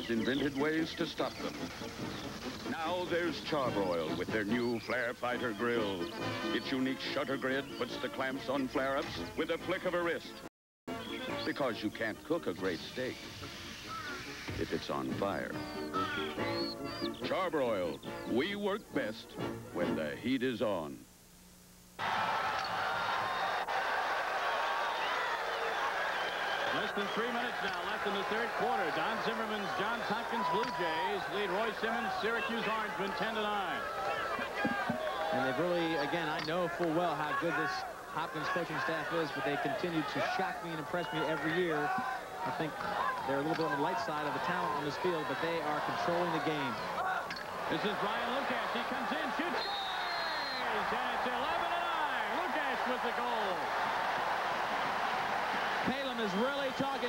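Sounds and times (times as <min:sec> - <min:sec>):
man commentating: 0:00.0 - 0:01.6, 0:02.7 - 0:10.4, 0:14.6 - 0:16.2, 0:26.6 - 0:49.9, 0:50.5 - 0:53.7, 0:55.8 - 0:57.0
crowd chattering and calling out: 0:25.6 - 0:54.2.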